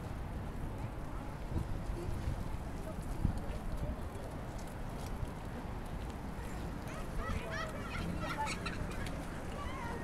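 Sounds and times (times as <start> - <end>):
crowd and city hum: 0.0 - 10.0.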